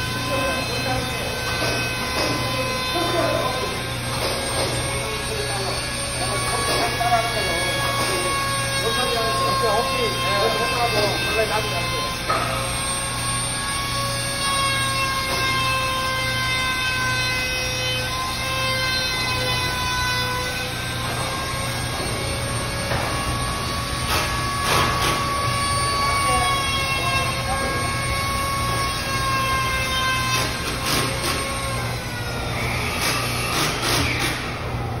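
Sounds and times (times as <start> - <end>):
high-pitched machine whine: 0.0 - 35.0.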